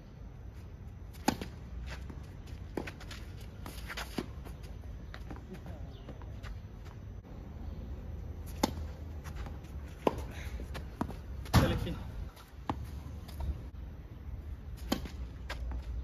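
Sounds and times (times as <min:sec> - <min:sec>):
racket striking tennis ball: 0:01.2 - 0:01.6, 0:08.4 - 0:12.0, 0:14.8 - 0:15.8.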